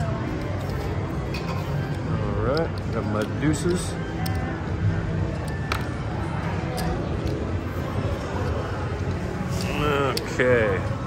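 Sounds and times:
casino background din: 0:00.0 - 0:11.0.

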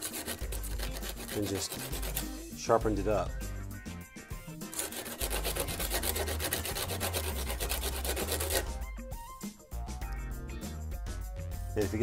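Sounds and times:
metal scraping on sandpaper: 0:00.0 - 0:02.4, 0:04.6 - 0:08.8.

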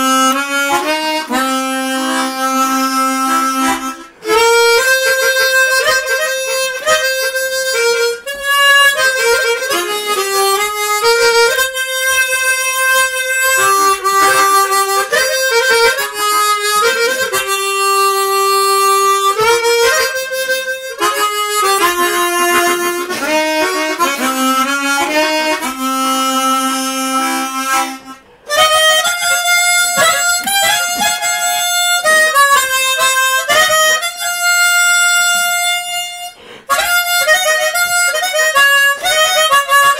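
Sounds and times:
chromatic harmonica melody: 0:00.0 - 0:39.9.

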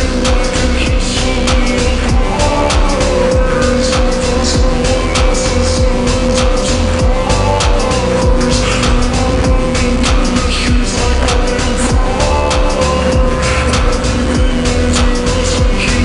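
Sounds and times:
slowed rap song with reverb: 0:00.0 - 0:16.0.

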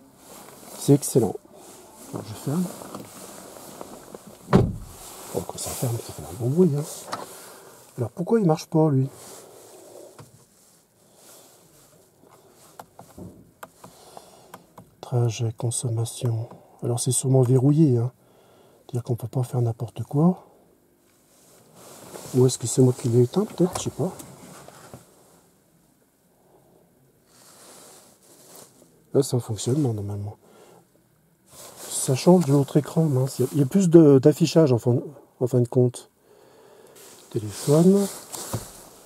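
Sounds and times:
faint high hiss: 0:00.0 - 0:16.1, 0:16.7 - 0:39.0.

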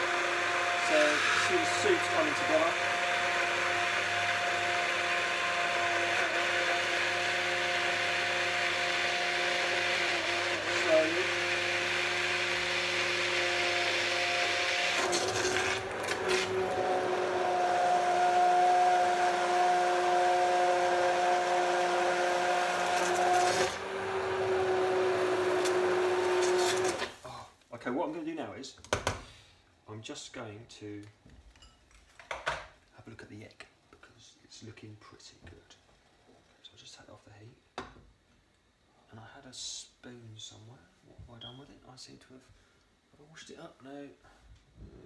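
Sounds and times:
stick blender motor whine: 0:00.0 - 0:27.2.

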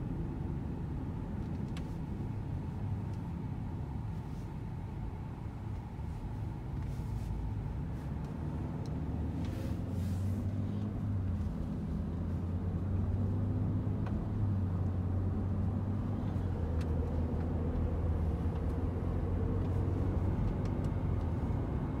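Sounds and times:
car cabin road noise: 0:00.0 - 0:22.0.

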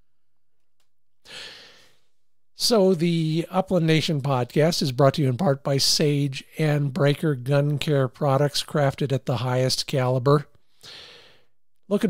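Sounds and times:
man breathing in: 0:01.2 - 0:02.3, 0:10.6 - 0:11.6.

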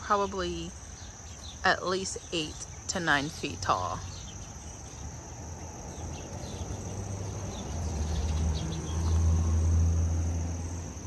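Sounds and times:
high-pitched insect sound: 0:00.0 - 0:11.0
vehicle passing: 0:04.6 - 0:11.0.

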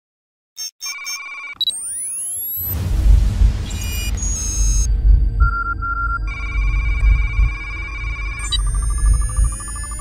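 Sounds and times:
short electronic beeps: 0:00.6 - 0:02.6, 0:03.7 - 0:10.0
deep bass rumble with hits: 0:02.6 - 0:10.0
held synth tone: 0:03.6 - 0:10.0.

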